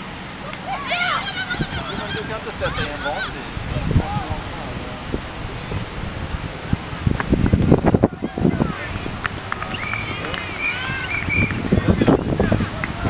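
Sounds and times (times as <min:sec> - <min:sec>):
high calls: 0:00.0 - 0:12.4
indistinct voices: 0:00.0 - 0:13.0
wind rumble on microphone: 0:01.5 - 0:13.0.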